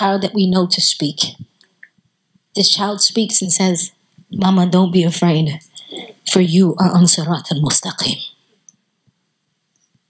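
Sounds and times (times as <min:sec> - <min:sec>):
woman's amplified voice: 0:00.0 - 0:01.8, 0:02.6 - 0:08.3.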